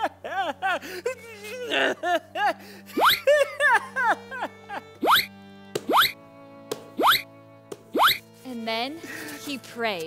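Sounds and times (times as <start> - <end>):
soft background music: 0.0 - 10.0
cartoon bloop pops: 5.0 - 5.3, 5.9 - 6.2, 7.0 - 7.2, 7.9 - 8.2.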